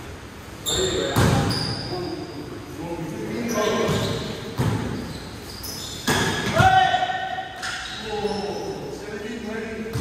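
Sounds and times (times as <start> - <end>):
sneaker squeaks on court floor: 0.6 - 2.4, 3.4 - 6.7, 7.6 - 8.8
players' voices: 0.6 - 5.1, 5.7 - 10.0.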